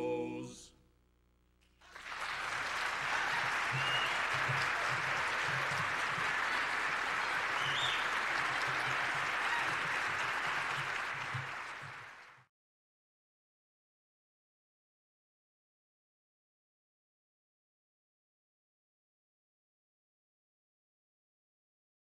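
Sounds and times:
vocal quartet singing: 0:00.0 - 0:00.8
audience applauding: 0:01.8 - 0:12.5.

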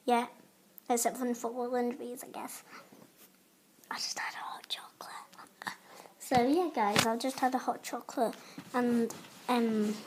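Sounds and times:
girl whispering: 0:03.9 - 0:06.3.

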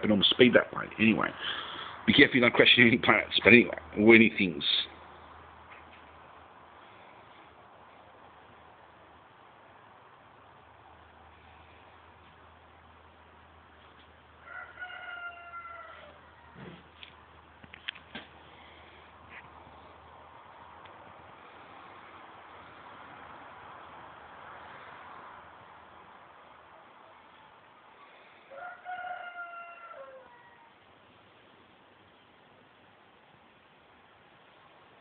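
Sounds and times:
faint background hiss: 0:00.0 - 0:14.8, 0:15.9 - 0:29.2, 0:29.9 - 0:35.0
rooster crowing: 0:14.4 - 0:16.8, 0:28.0 - 0:30.9.

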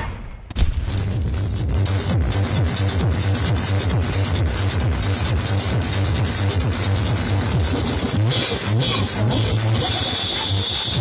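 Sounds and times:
loud electronic dance music: 0:00.9 - 0:11.0.

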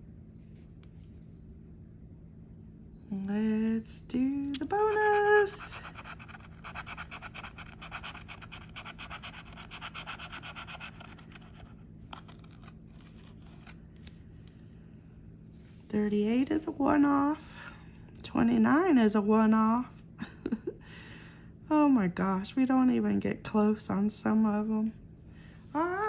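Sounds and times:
scratching tool scraping ticket: 0:04.7 - 0:13.8.

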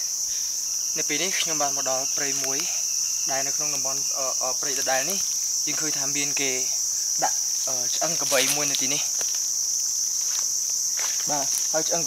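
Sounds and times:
insects droning: 0:00.0 - 0:12.0.

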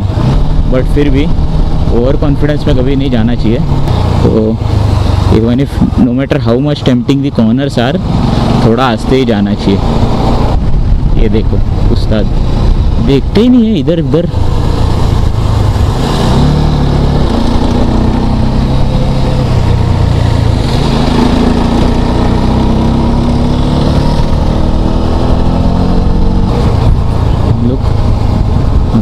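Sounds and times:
motorcycle engine running: 0:00.0 - 0:29.0
wind on microphone: 0:14.3 - 0:29.0.

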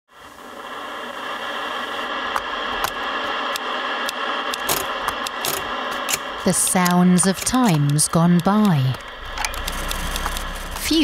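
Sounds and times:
faint hum: 0:00.1 - 0:11.0
television static hiss: 0:00.1 - 0:11.0
sharp clicks and ticks: 0:02.3 - 0:11.0.

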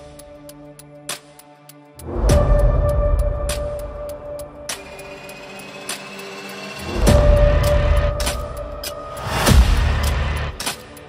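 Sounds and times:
epic trailer music: 0:00.0 - 0:11.0.

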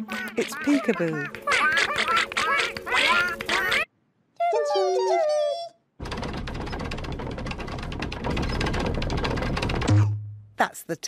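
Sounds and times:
squeaky chirping cartoon voices: 0:00.0 - 0:05.8
gliding squeaky calls: 0:00.1 - 0:03.9.

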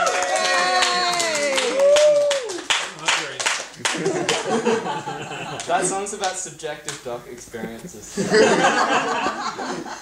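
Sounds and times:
small group clapping: 0:00.0 - 0:07.1.

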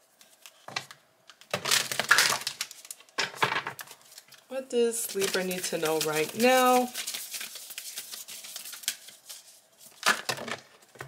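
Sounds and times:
cards shuffled by hand: 0:05.0 - 0:11.0.

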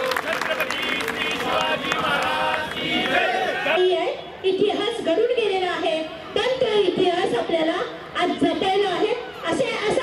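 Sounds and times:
audience clapping: 0:00.0 - 0:03.3
voices: 0:00.0 - 0:10.0.

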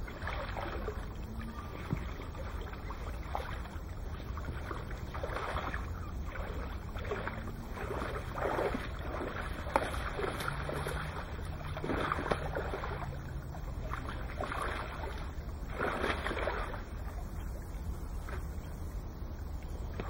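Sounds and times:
water splashing and sloshing: 0:00.0 - 0:20.0
wind rumble on microphone: 0:00.0 - 0:20.0.

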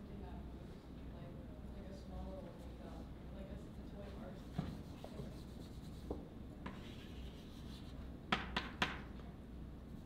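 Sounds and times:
chalk taps and scrapes: 0:04.2 - 0:09.1
chalk scratching on blackboard: 0:04.4 - 0:08.0.

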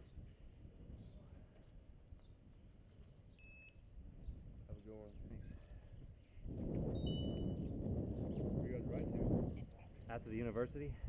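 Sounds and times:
electronic beep: 0:03.4 - 0:03.8, 0:07.0 - 0:07.6
man's voice: 0:10.1 - 0:11.0.

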